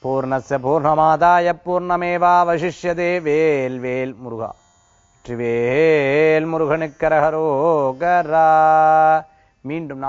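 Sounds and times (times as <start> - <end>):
man chanting: 0.0 - 4.6, 5.3 - 10.0.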